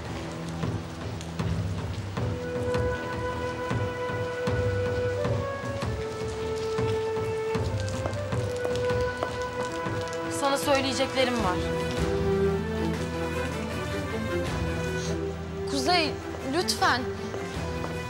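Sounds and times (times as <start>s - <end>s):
background score music: 0.0s - 18.0s
steady rain falling: 0.0s - 18.0s.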